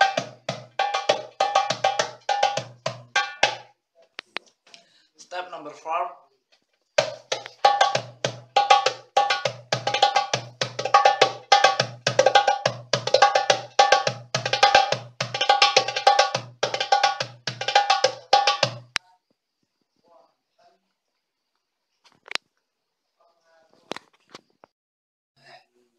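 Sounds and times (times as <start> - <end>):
goblet drum played by hand: 0.0 - 3.7, 7.0 - 19.0.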